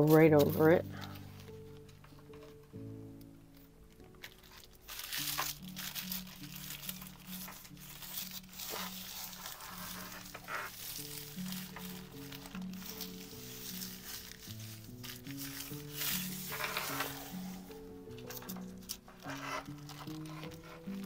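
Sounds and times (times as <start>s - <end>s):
tissue paper rustling: 0.0s - 2.7s, 3.5s - 21.0s
background music with held notes: 0.0s - 21.0s.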